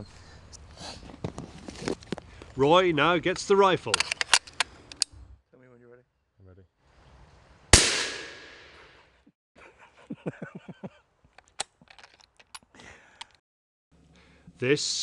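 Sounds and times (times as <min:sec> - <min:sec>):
rifle shot: 0:07.7 - 0:08.9.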